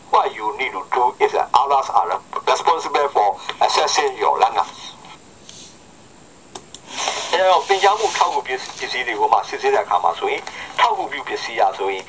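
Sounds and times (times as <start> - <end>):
person talking over radio: 0.2 - 5.0, 7.3 - 12.0.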